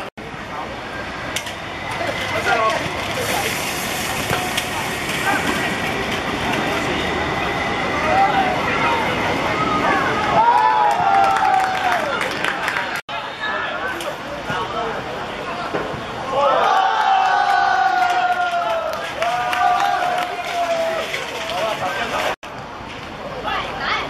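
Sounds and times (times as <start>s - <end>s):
steady outdoor hiss: 0.0s - 10.4s, 13.1s - 16.7s, 18.7s - 24.0s
players shouting and calling: 6.8s - 22.4s.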